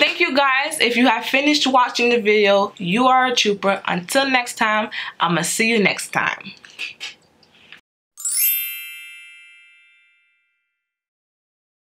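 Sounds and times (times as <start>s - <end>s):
bright chime sweep: 8.2s - 10.4s.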